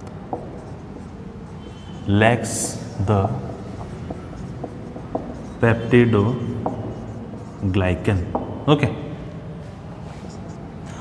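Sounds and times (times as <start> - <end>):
marker pen on whiteboard: 0.0 - 11.0.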